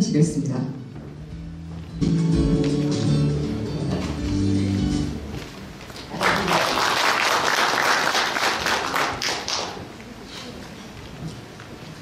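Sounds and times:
guitar music: 0.9 - 5.5
audience applause: 6.0 - 9.9.

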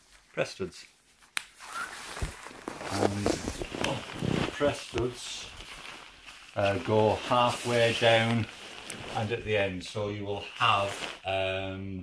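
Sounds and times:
duvet fabric rustling: 0.0 - 11.6.

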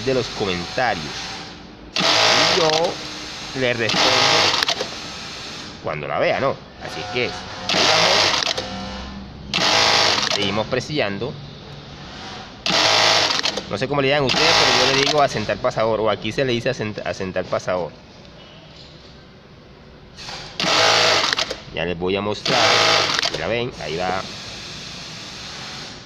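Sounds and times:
sewing machine hum: 0.0 - 5.8, 7.0 - 10.6, 12.0 - 15.5, 20.2 - 21.7, 22.4 - 26.0
sewing machine rapid stitching: 0.0 - 5.8, 7.5 - 8.9, 9.5 - 10.6, 12.6 - 15.5, 20.2 - 21.6, 22.4 - 26.0.

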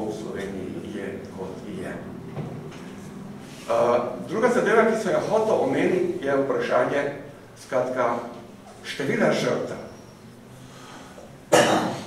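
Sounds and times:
loud cough: 11.5 - 12.0.

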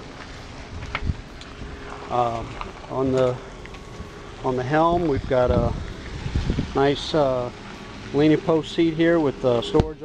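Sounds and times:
wind rumble on microphone: 0.0 - 8.2.

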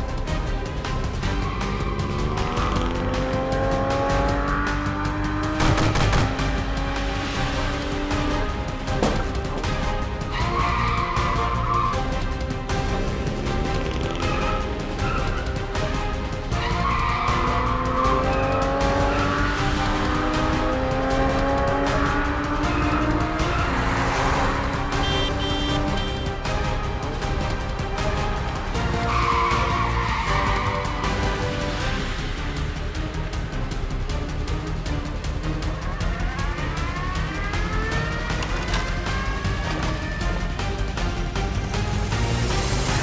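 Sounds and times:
car tyres squealing: 0.9 - 3.6, 8.9 - 12.3, 13.6 - 20.4, 21.4 - 26.4, 28.8 - 31.4.

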